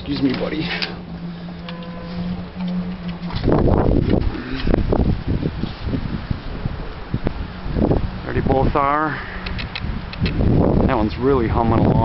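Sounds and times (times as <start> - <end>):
steady low hum: 0.0 - 10.9
wind buffeting microphone: 0.0 - 12.0.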